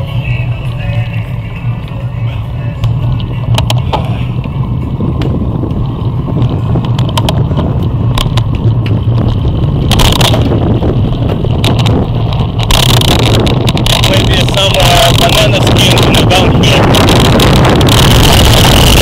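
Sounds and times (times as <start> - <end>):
bicycle tyres on pavement: 0.0 - 19.0
wind rumble: 0.0 - 19.0
sharp clicks from bike: 2.8 - 19.0.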